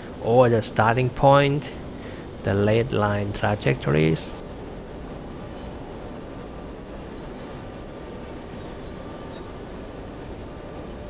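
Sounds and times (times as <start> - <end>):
faint steady hum tones: 0.0 - 11.0
low rumble and hiss: 0.0 - 11.0.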